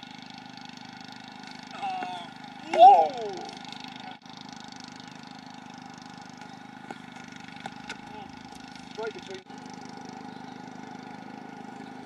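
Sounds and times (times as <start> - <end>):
low background hum: 1.3 - 12.0.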